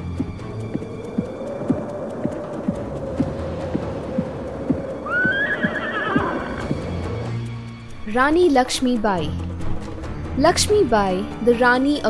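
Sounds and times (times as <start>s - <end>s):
hoofbeats: 0.0s - 7.4s
held musical drone: 0.0s - 7.9s
horse whinny: 5.0s - 6.8s.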